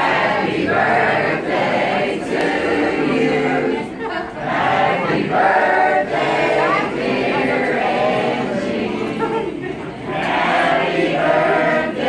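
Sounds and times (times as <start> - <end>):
group of people singing: 0.0 - 12.0.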